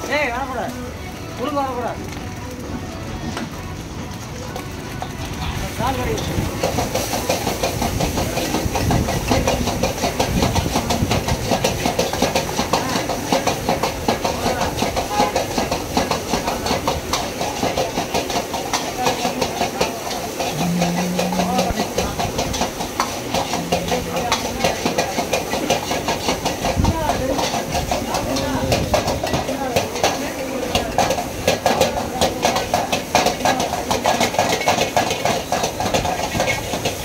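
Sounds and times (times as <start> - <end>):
gas burner flame: 2.0 - 37.0
sizzling hiss: 4.8 - 37.0.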